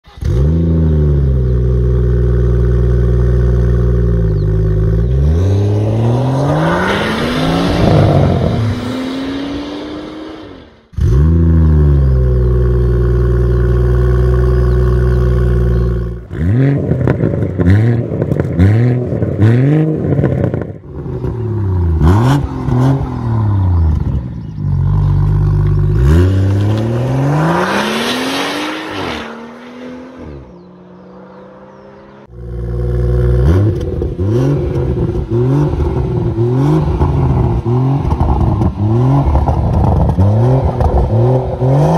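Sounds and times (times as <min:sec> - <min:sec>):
car engine revving: 0:00.1 - 0:41.9.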